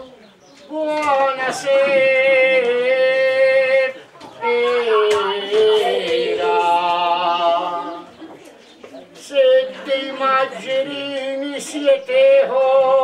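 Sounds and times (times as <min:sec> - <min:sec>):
man singing unaccompanied: 0:00.7 - 0:08.2, 0:09.2 - 0:13.0.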